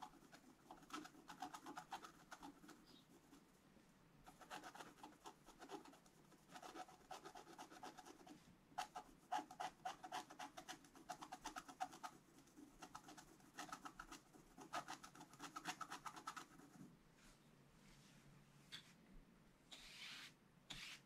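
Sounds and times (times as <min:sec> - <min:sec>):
stylus scratching paper: 0:00.0 - 0:03.4, 0:04.3 - 0:16.8.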